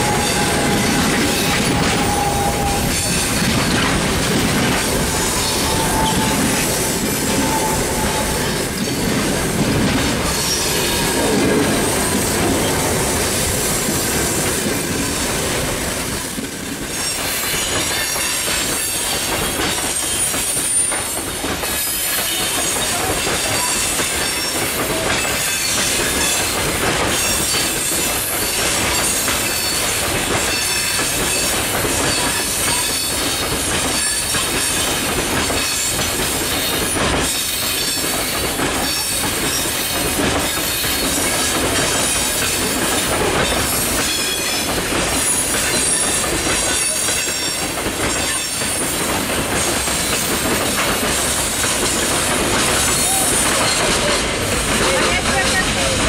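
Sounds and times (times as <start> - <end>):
high-pitched wheel squeal: 0.0 - 3.4, 5.2 - 8.9
steel wheels rushing on rails: 0.0 - 56.0
wheels clacking over rail joints: 0.0 - 56.0.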